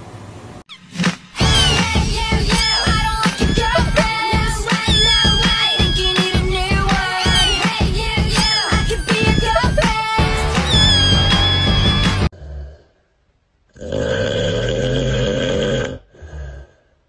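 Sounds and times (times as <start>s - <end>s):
upbeat music with wavering melody: 1.4s - 12.3s
snoring sound effect: 12.3s - 13.1s, 13.7s - 17.0s.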